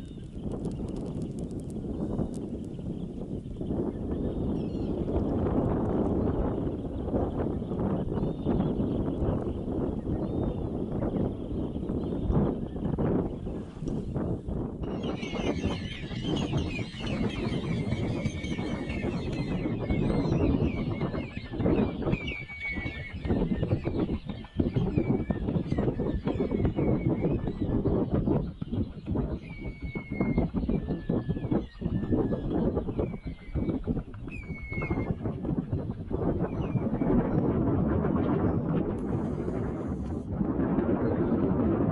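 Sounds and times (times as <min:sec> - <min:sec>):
wind rumble on microphone: 0:00.0 - 0:41.9.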